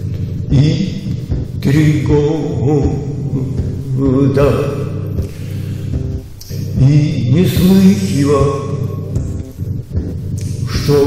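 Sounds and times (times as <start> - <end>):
person singing chant-like: 0.0 - 5.1, 6.6 - 9.2
low musical accompaniment: 0.0 - 11.0.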